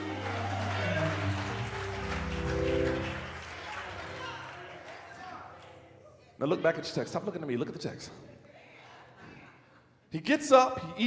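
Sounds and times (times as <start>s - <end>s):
church organ chords: 0.0s - 6.2s.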